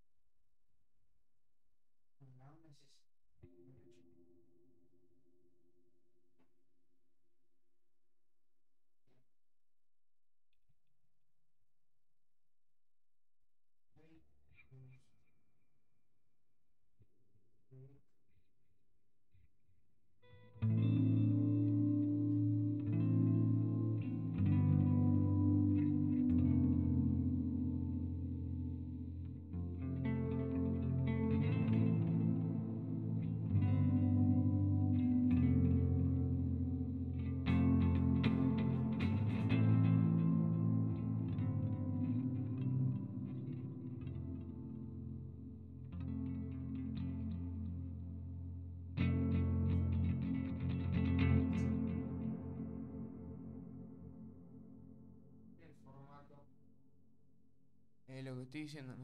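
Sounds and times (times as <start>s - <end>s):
clean electric guitar chords: 20.4s - 55.1s.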